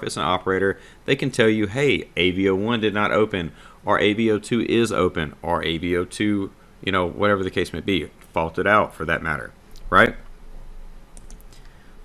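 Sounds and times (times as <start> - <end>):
computer mouse clicks: 11.2 - 11.8.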